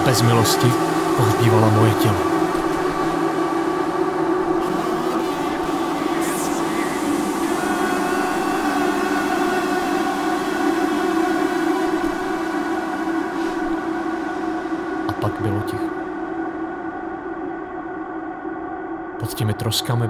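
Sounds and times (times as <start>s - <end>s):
dense droning chord: 0.0s - 19.2s.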